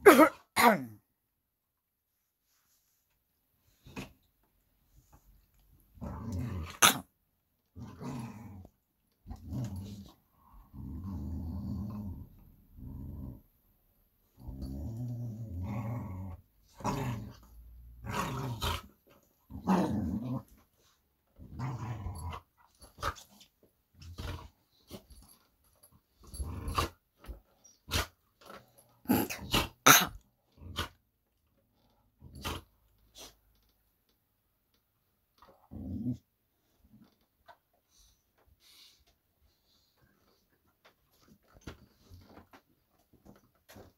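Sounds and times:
dog growling: 7.7s - 13.6s, 14.3s - 20.6s, 21.4s - 23.4s, 29.0s - 31.0s, 35.5s - 36.3s.

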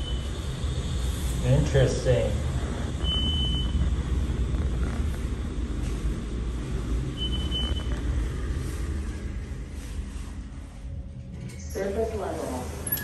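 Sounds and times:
elevator rumble and hum: 0.0s - 13.0s.

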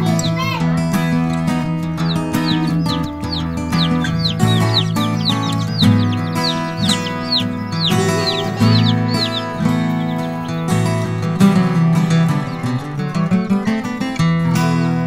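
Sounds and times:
chicks peeping: 0.0s - 14.2s
instrumental background music: 0.0s - 15.0s.

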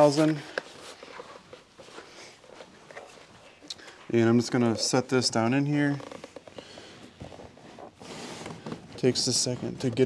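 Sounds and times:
faint plastic knocks and rubbing: 5.9s - 10.0s.

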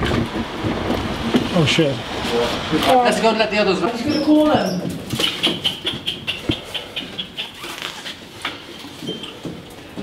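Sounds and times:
pigeon squabs peeping: 5.1s - 8.2s.

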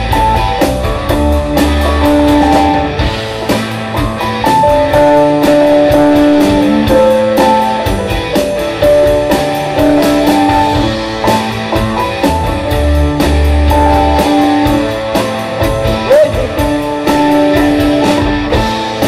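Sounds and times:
instrumental rock band: 0.0s - 19.0s.

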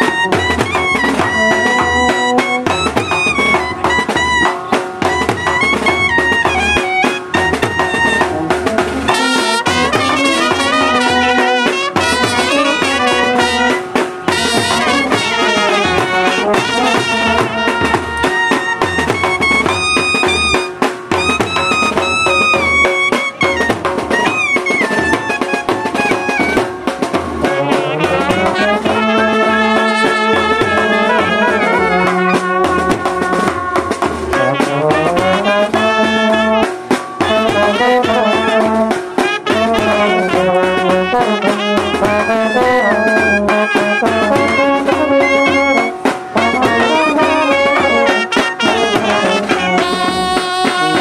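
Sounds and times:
bass drum: 0.0s - 29.5s
baritone horns: 0.0s - 51.0s
clarinet: 0.0s - 51.0s
snare drum: 0.0s - 51.0s
trumpets: 0.0s - 51.0s.

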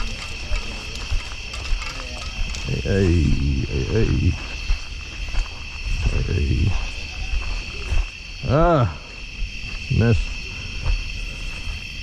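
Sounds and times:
night insects chorus: 0.0s - 12.0s.

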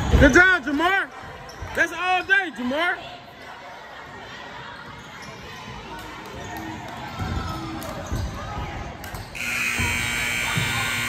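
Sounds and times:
scoreboard buzzer: 9.4s - 11.0s.

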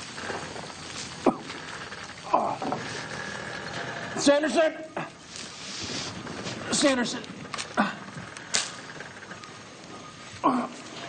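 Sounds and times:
man groaning: 10.4s - 11.0s.

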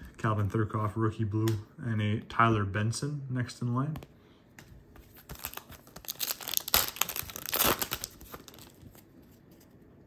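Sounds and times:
card pack wrapper ripping: 5.2s - 9.1s.

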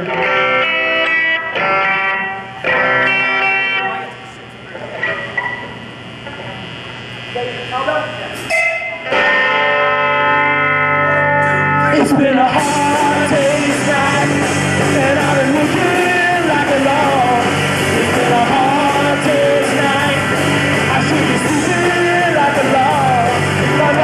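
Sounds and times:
electric guitar chords: 0.0s - 24.0s.

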